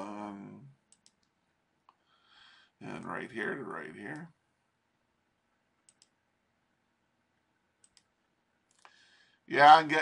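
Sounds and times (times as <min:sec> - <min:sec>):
computer mouse clicks: 0:00.9 - 0:02.0, 0:05.8 - 0:06.2, 0:07.8 - 0:09.0.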